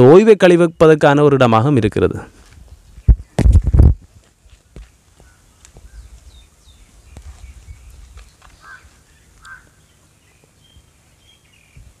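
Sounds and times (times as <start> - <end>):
small birds chirping: 2.4 - 12.0
wind rumble on microphone: 2.5 - 4.3, 5.8 - 9.0, 11.7 - 12.0.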